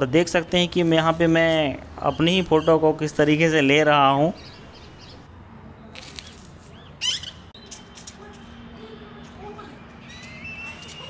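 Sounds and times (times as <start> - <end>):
faint outdoor background noise: 0.0 - 11.0
small birds chirping: 0.2 - 11.0.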